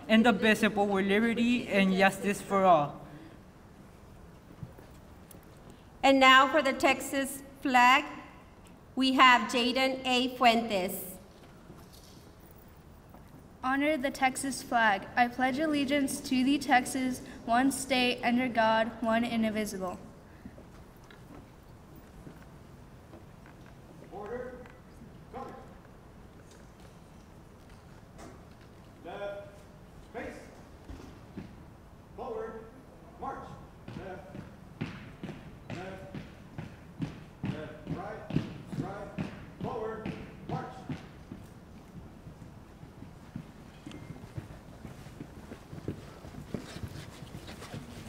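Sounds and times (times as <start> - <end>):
heavy boot footsteps on stage: 33.8 - 48.0.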